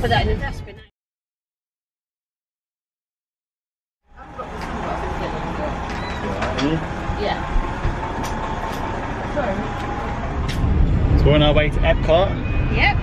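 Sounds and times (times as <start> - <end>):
voices talking: 4.1 - 10.5, 11.1 - 13.0
car cabin rumble: 4.2 - 13.0.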